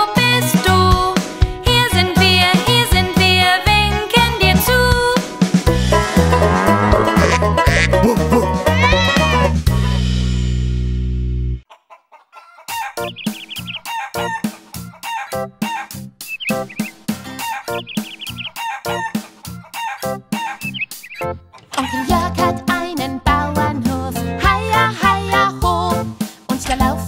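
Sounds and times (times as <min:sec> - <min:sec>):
bouncy children's music: 0:00.0 - 0:10.4, 0:12.6 - 0:27.0
held music chord: 0:05.6 - 0:08.8
chickens clucking: 0:05.7 - 0:08.6, 0:11.7 - 0:22.3.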